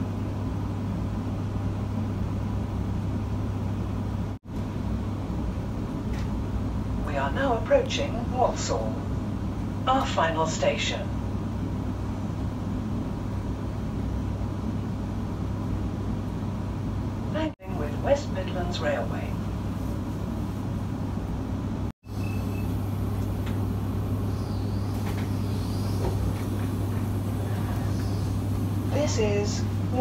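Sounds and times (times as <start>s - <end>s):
train carriage hum and rumble: 0.0s - 30.0s.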